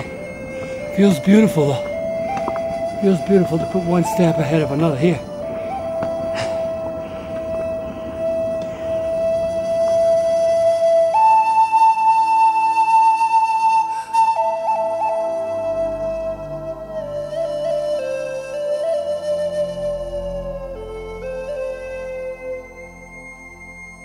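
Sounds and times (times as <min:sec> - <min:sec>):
flute playing held notes: 0:00.0 - 0:24.0.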